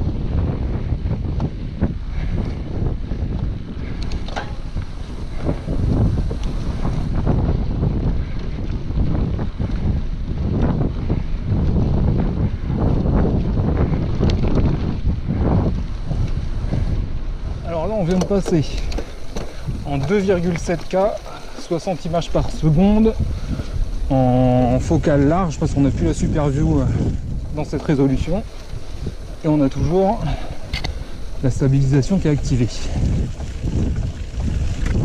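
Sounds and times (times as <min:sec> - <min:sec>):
bike clicks and rattles: 0:00.0 - 0:35.0
wind buffeting microphone: 0:00.0 - 0:35.0
tyre rumble: 0:01.2 - 0:35.0
man talking: 0:17.6 - 0:19.0, 0:19.8 - 0:23.2, 0:24.1 - 0:28.5, 0:29.4 - 0:30.5, 0:31.4 - 0:33.1.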